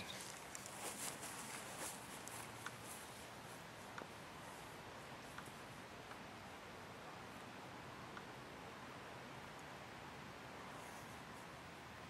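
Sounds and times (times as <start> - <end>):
faint outdoor background noise: 0.0 - 12.0
soft ticks: 8.1 - 8.3.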